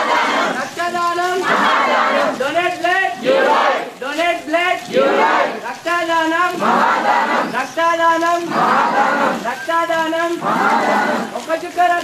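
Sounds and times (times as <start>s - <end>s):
crowd chanting in unison: 0.0s - 0.6s, 1.4s - 2.5s, 3.1s - 4.0s, 4.9s - 5.6s, 6.5s - 7.6s, 8.4s - 9.5s, 10.4s - 11.4s.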